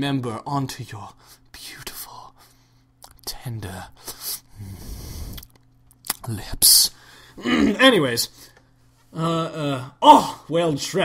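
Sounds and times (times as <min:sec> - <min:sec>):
man whispering: 0:01.0 - 0:02.4, 0:03.0 - 0:04.4, 0:06.2 - 0:07.0.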